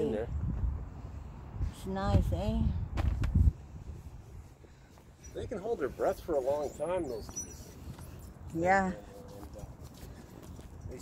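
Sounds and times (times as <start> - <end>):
wind buffeting microphone: 0.1 - 4.8.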